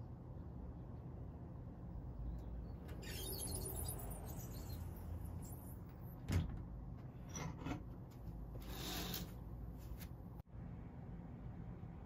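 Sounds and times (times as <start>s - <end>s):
rustling and scraping: 7.0s - 10.2s.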